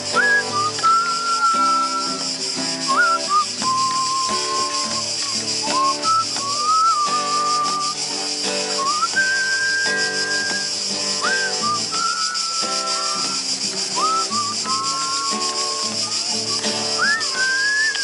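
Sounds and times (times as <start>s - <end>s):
acoustic guitar strumming: 0.0s - 18.0s
man whistling a melody: 0.0s - 18.0s.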